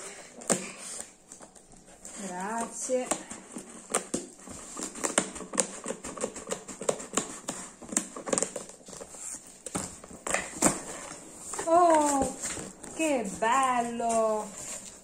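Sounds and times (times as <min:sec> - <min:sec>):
person's voice: 0:11.6 - 0:14.6.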